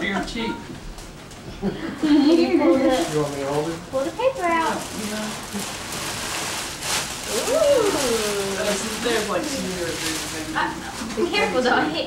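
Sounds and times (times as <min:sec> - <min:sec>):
tissue paper rustling: 0:02.6 - 0:12.0.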